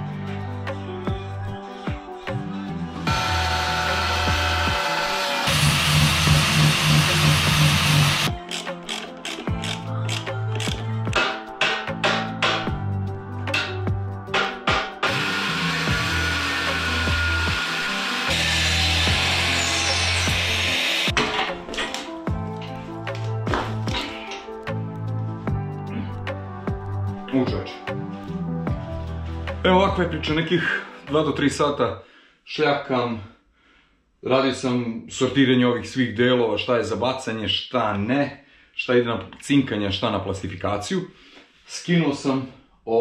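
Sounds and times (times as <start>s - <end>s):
background music with bass line: 0.0s - 31.7s
angle grinder cutting steel: 3.0s - 10.7s, 15.0s - 21.2s.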